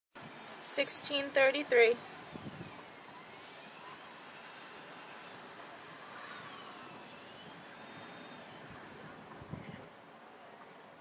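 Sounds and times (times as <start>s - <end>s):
distant motor hum: 0.2s - 11.0s
faint wavering high whine: 0.2s - 11.0s.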